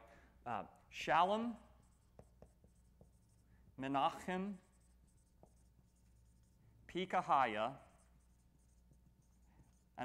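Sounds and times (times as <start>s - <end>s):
marker writing on whiteboard: 0.7s - 10.0s
man talking: 3.8s - 4.6s.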